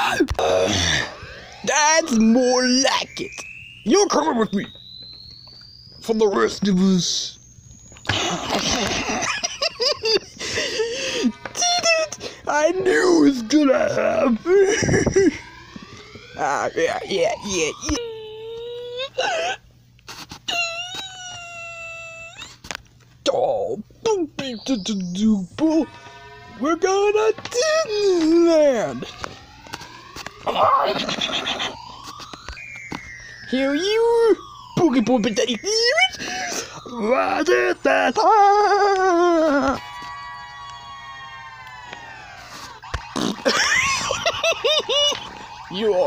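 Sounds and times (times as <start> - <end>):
person wailing high note: 0.0 - 4.8, 8.0 - 19.6, 20.5 - 22.6, 23.3 - 32.1, 33.4 - 46.0
steady tone: 0.0 - 18.2, 24.0 - 46.0
person making goofy voice noises: 17.7 - 19.6, 30.5 - 31.8, 35.6 - 39.8.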